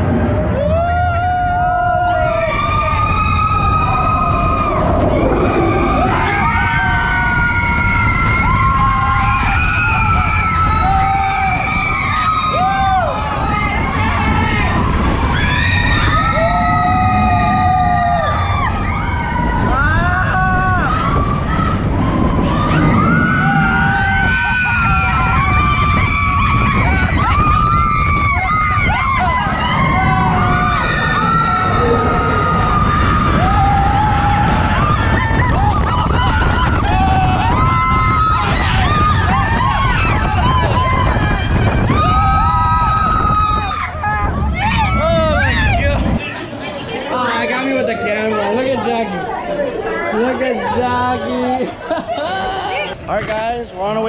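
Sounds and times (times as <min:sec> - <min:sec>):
roller coaster train rumbling: 0:00.0 - 0:54.0
riders screaming: 0:00.2 - 0:46.0.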